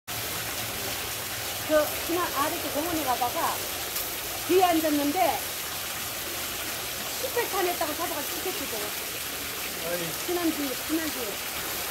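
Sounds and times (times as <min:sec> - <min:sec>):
water spray hissing and pattering: 0:00.1 - 0:11.9.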